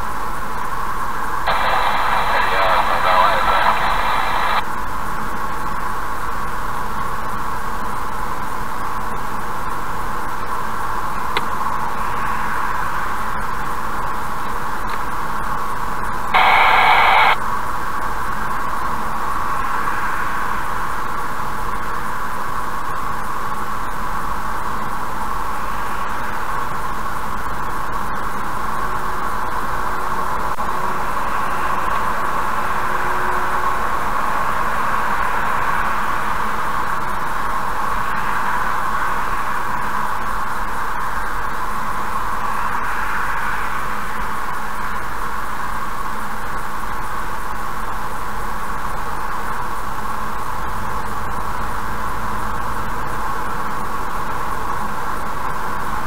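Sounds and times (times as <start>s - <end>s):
road and tyre noise in car: 0.0s - 1.5s, 4.6s - 16.3s, 17.4s - 56.0s.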